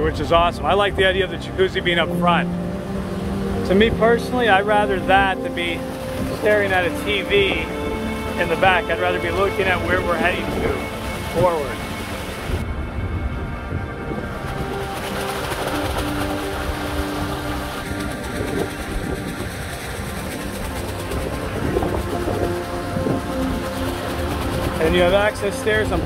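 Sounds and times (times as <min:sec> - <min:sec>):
faint music: 0:00.0 - 0:26.0.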